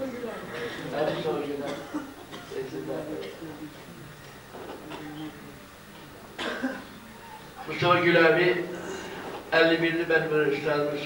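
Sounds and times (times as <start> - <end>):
faint low murmur of voice: 0.0 - 7.7
man coughing: 1.6 - 2.6, 6.4 - 6.9.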